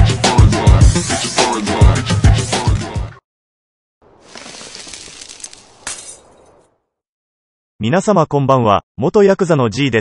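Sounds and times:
glass breaking: 0:04.3 - 0:06.6.

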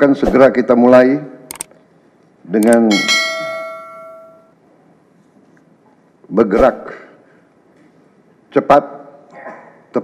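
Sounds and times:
notification bell ding: 0:02.9 - 0:04.5.

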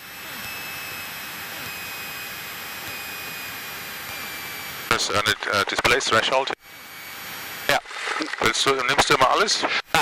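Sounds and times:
faint high whine: 0:00.0 - 0:10.0.

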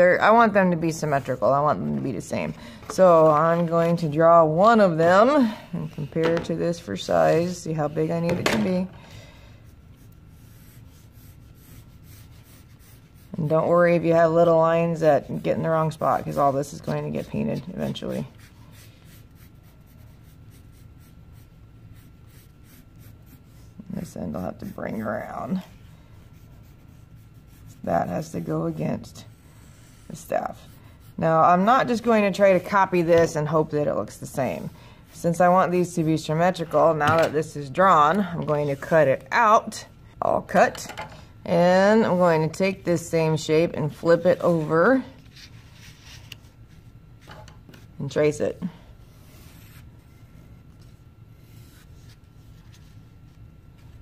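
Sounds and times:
pencil scratching on cardboard: 0:10.0 - 0:25.6, 0:26.3 - 0:32.1.

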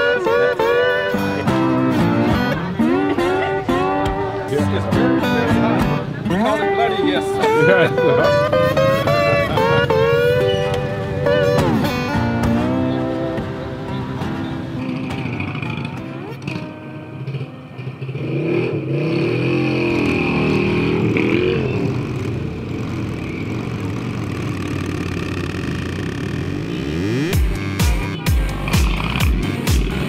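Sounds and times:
motorcycle engines revving: 0:00.0 - 0:30.0
background music: 0:26.9 - 0:30.0.

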